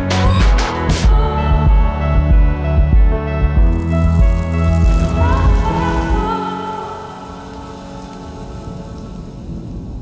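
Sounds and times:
background music: 0.0s - 10.0s
rain falling: 3.7s - 10.0s.

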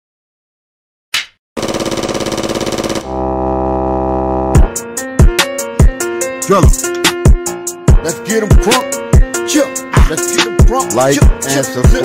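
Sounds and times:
rapid stuttering tone: 1.6s - 4.6s
synth chord with deep bass: 2.1s - 5.4s.

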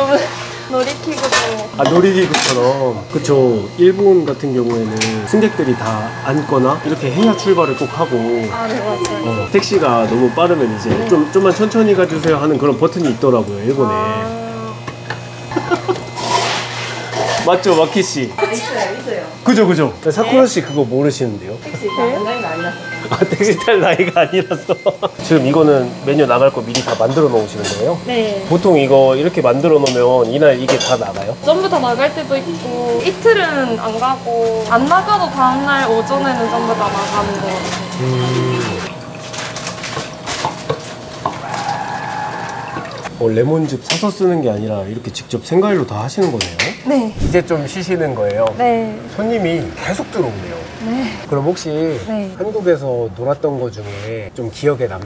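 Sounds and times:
steady low hum: 0.0s - 20.8s, 21.4s - 40.4s.

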